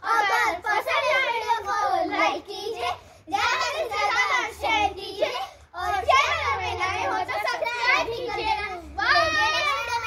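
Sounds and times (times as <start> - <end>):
young children's voices: 0.0 - 10.0.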